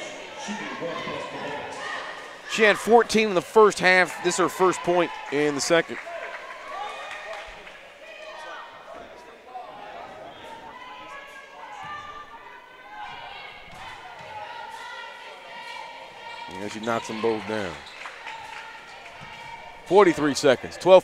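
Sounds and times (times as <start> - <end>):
chatter of voices: 0.0 - 21.0.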